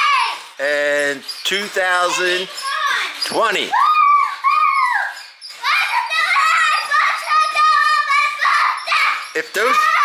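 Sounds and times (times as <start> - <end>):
girl squealing whoops: 3.7 - 5.2.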